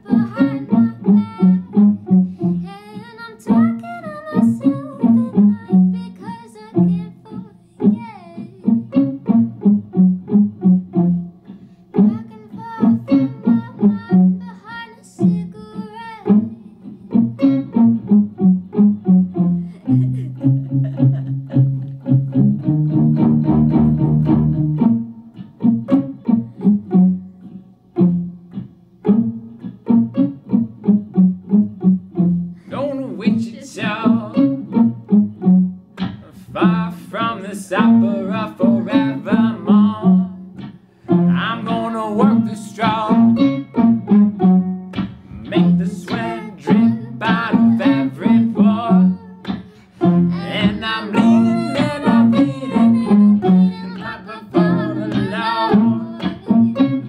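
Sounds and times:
woman singing: 0.0s - 2.0s, 2.6s - 8.9s, 12.0s - 17.1s, 32.6s - 34.6s, 36.3s - 40.6s, 45.5s - 57.0s
electric banjo ukulele playing: 0.0s - 57.0s.

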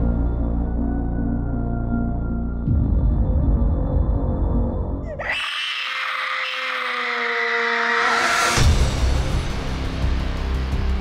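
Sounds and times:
boy screaming: 5.1s - 8.4s.

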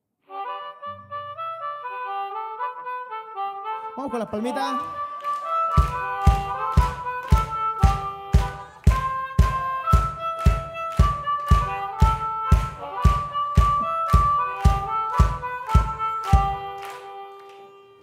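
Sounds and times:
blues harmonica playing: 0.3s - 18.0s
steady percussive beat: 5.2s - 17.0s.

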